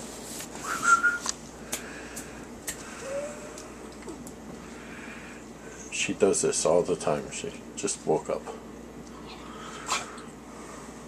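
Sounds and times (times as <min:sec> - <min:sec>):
person whistling: 0:00.6 - 0:01.3.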